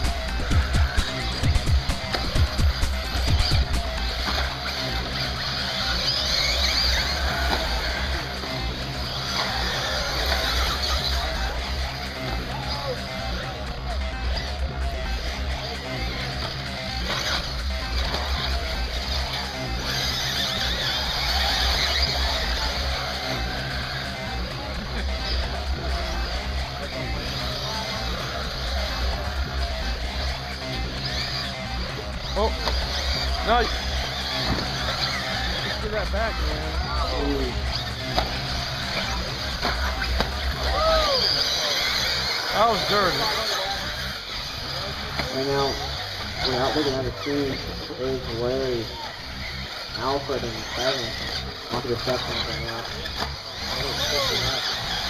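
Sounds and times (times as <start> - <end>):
music playing: 0.0 - 55.0
rc cars whining: 0.0 - 55.0.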